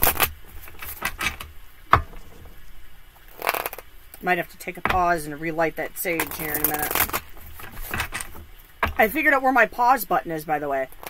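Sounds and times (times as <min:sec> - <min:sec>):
cards being shuffled: 0:06.1 - 0:09.0.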